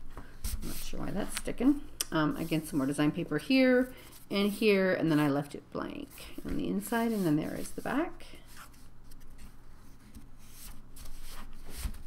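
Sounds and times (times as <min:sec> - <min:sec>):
paper scrape: 0:06.5 - 0:12.0
paper pages rustling: 0:08.4 - 0:12.0.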